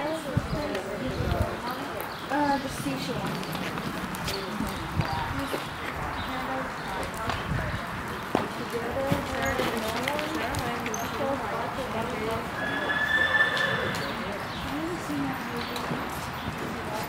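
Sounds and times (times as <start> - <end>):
people chattering: 0.0 - 17.0
horse hoofbeats: 0.6 - 17.0.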